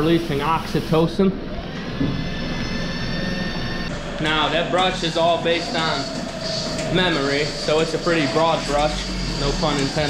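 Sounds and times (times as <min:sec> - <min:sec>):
high whining tones: 0:00.0 - 0:10.0
milking machine mechanical hum: 0:00.0 - 0:10.0.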